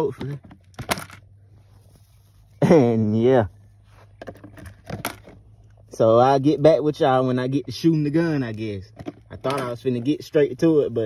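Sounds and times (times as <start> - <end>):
cartridges clicking and rustling: 0.2 - 1.3, 4.2 - 5.5.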